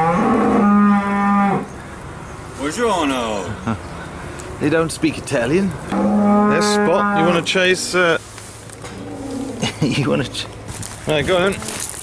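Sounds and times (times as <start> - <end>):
cow mooing: 0.0 - 1.7, 5.9 - 8.0.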